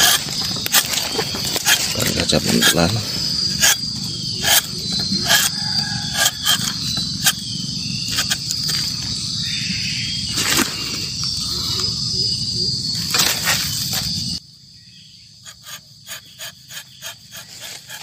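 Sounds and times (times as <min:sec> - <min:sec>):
insects chirring: 0:00.0 - 0:18.0.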